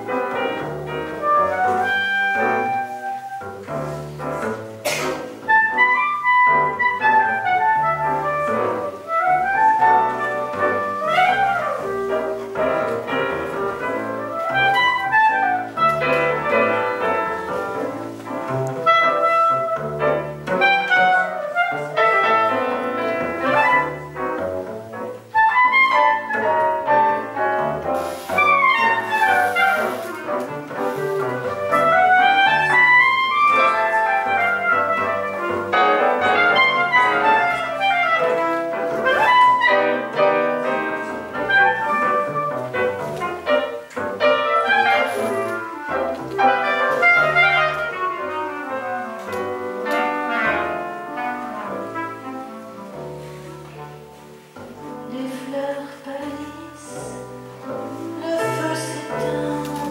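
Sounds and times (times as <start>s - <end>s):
clarinet solo: 0.0s - 4.2s, 5.4s - 24.6s, 25.2s - 54.6s
double bass: 0.0s - 59.9s
piano: 0.0s - 59.9s.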